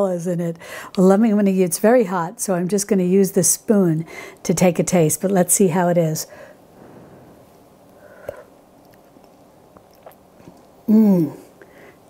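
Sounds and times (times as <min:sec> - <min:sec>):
faint mouth sounds: 0:08.0 - 0:11.8.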